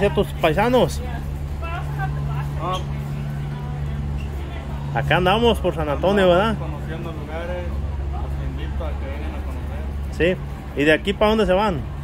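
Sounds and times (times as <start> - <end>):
faint background voices: 0.0 - 10.8
low machine hum: 0.0 - 12.0.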